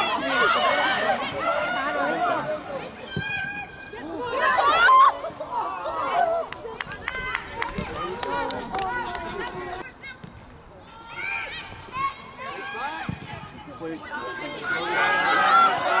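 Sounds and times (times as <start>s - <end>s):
players shouting: 0.0s - 10.2s, 10.8s - 16.0s.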